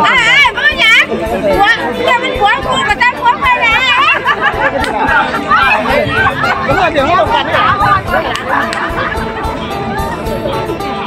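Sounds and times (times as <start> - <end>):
chatter: 0.0 - 11.0.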